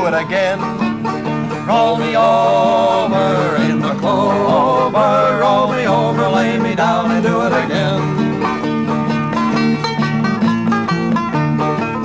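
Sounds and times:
acoustic guitar strumming: 0.0s - 12.0s
banjo plucking: 0.0s - 12.0s.

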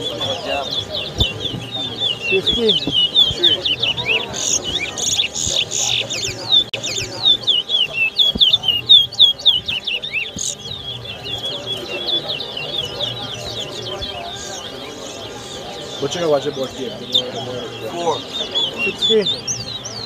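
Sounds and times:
finches singing: 0.0s - 20.0s.

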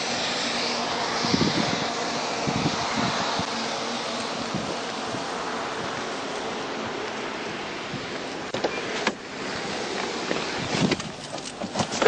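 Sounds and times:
vehicle on wet road: 0.0s - 12.0s.

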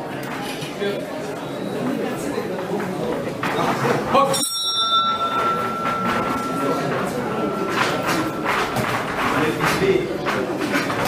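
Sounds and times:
boxing ring bell ringing: 4.3s - 10.2s.

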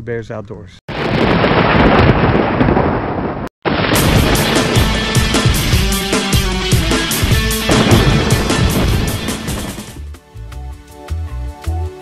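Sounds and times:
thunderclap rumbling: 0.9s - 10.0s.

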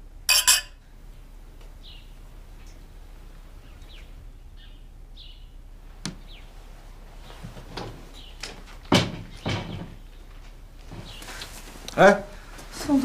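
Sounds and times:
wooden door knocking and rattling: 8.9s - 10.0s
door banging: 8.9s - 10.1s.

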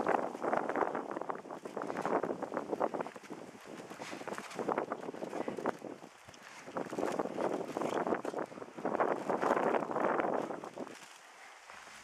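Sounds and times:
gusty wind buffeting microphone: 0.0s - 12.0s
footsteps walking: 8.4s - 12.0s.

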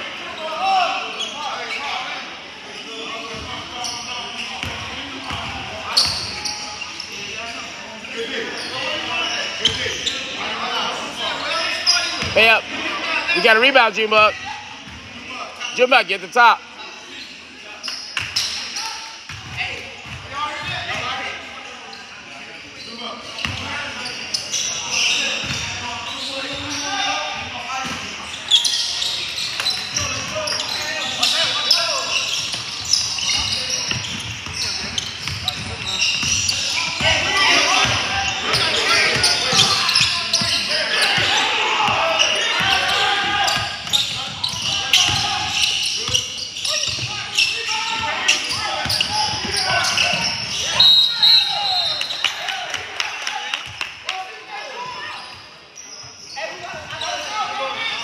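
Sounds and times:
voices of players and onlookers: 0.0s - 58.0s.

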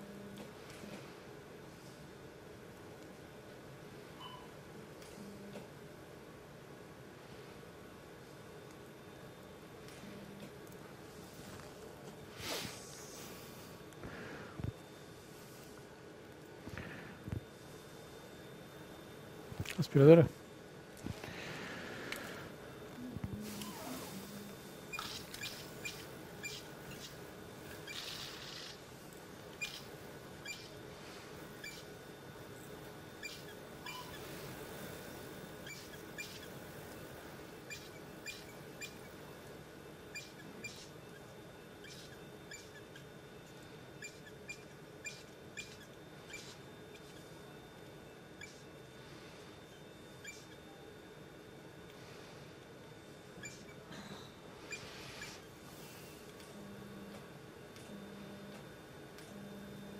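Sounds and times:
faint equipment hum: 0.0s - 59.9s
suction cannula squeaks and clicks: 24.9s - 28.8s, 29.5s - 30.8s, 31.6s - 31.9s, 33.2s - 34.3s, 35.6s - 36.6s, 37.6s - 39.1s, 40.1s - 47.3s, 48.4s - 48.7s, 49.7s - 50.7s, 53.4s - 53.8s, 54.7s - 55.6s.

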